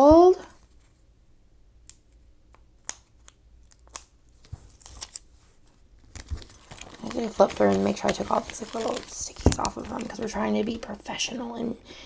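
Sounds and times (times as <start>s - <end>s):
sticker sheets crinkling: 2.8s - 11.1s.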